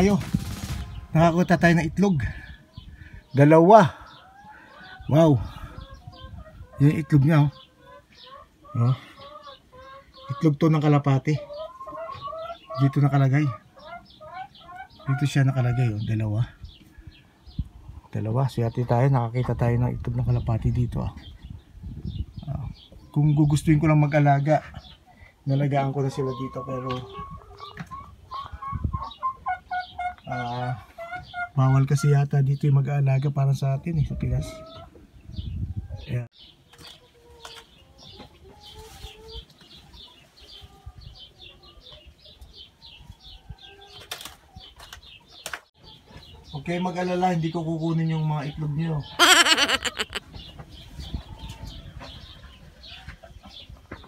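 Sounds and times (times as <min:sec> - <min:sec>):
birds calling: 0:00.0 - 0:20.5, 0:21.1 - 0:32.2, 0:41.2 - 0:54.0
short high bird chirps: 0:49.2 - 0:50.2.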